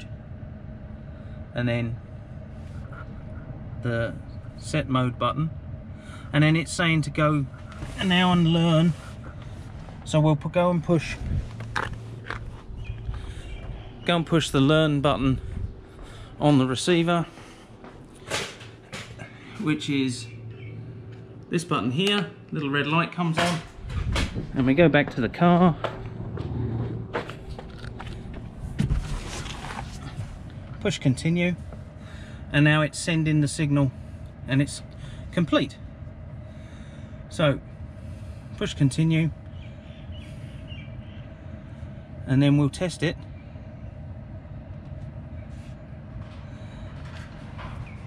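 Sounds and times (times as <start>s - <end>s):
garage door motor rumble: 0.0s - 32.6s, 43.2s - 48.0s
faint steady hum: 0.0s - 48.0s
footsteps: 17.2s - 19.6s, 23.3s - 30.6s
knocks and rustles: 23.3s - 30.5s.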